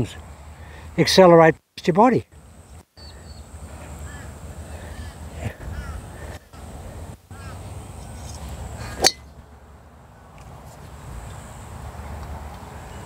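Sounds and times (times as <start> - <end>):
golf club striking ball: 9.0 - 9.3.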